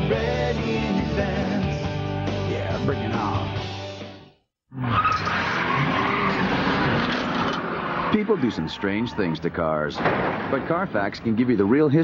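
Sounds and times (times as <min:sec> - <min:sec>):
car tyres squealing: 0:04.8 - 0:10.5
car engine: 0:04.8 - 0:11.3.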